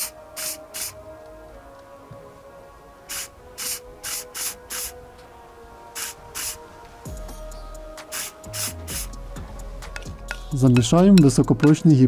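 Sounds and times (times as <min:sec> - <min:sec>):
spray lacquer hissing in bursts: 0:00.0 - 0:01.0, 0:03.1 - 0:05.0, 0:05.9 - 0:06.7, 0:08.0 - 0:09.2.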